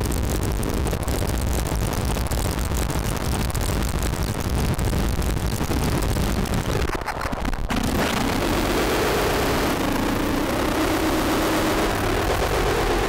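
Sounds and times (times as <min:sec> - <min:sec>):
harsh crackling electronic noise: 0:00.0 - 0:13.0
heavy low rumble: 0:00.0 - 0:13.0.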